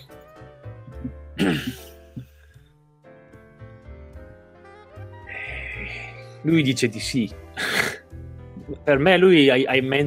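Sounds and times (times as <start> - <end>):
quiet background music: 0.0 - 10.0
person clearing throat: 0.9 - 2.4.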